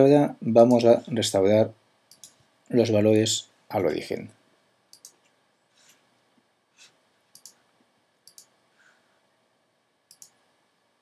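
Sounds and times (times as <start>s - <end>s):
computer mouse clicks: 2.1s - 2.4s, 4.9s - 5.3s, 6.8s - 8.6s, 10.1s - 10.4s.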